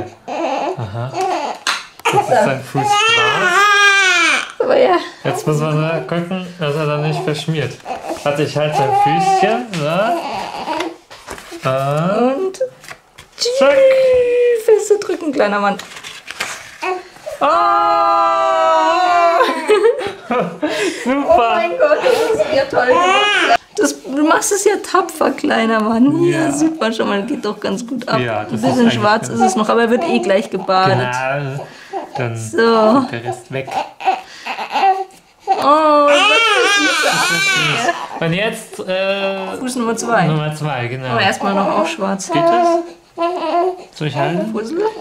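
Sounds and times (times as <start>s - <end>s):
baby crying: 0.0s - 4.6s, 7.0s - 11.0s, 16.8s - 19.9s, 22.1s - 23.6s, 28.5s - 32.3s, 33.1s - 38.3s, 41.1s - 45.0s
paper handling: 10.7s - 12.1s, 12.8s - 13.6s, 15.7s - 17.3s.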